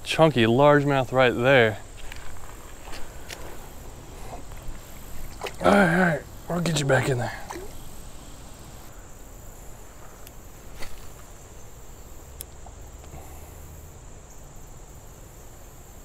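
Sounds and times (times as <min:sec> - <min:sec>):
faint outdoor hiss: 0:00.0 - 0:16.0
insects trilling: 0:00.0 - 0:16.0.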